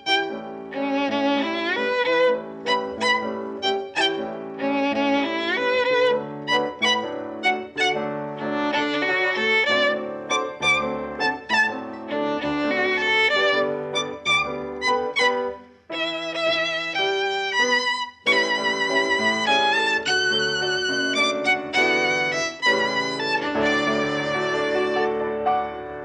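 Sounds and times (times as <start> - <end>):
piano accompaniment: 0.0 - 26.0
violin melody with vibrato: 0.0 - 26.0.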